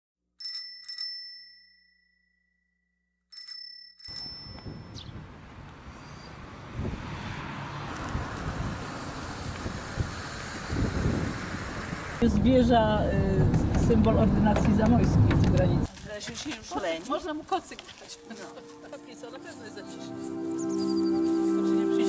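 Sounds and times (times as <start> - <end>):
small bell dinging: 0.4 - 5.1
road traffic rumble: 4.5 - 16.1.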